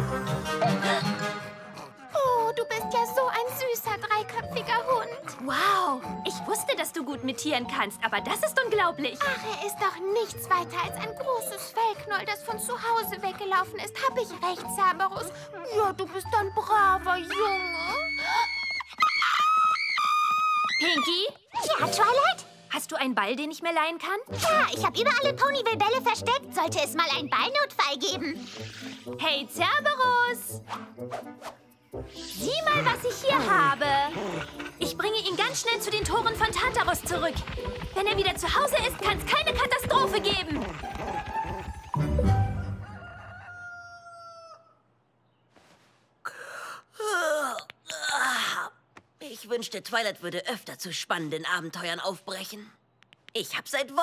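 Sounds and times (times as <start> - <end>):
rooster crowing: 42.3 - 44.9.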